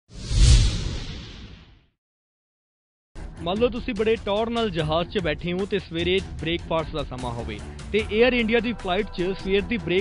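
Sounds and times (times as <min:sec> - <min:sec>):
whoosh with deep rumble: 0:00.1 - 0:01.8.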